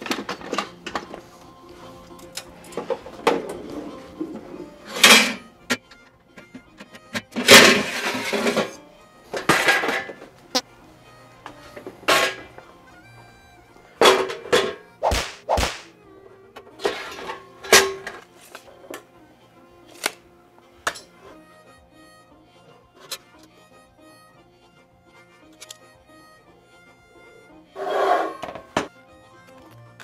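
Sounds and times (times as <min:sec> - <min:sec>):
background music: 0:00.0 - 0:30.0.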